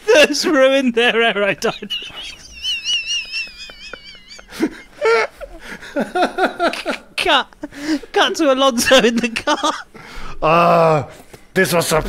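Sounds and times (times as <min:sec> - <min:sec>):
burst of laughter: 0:01.8 - 0:07.1.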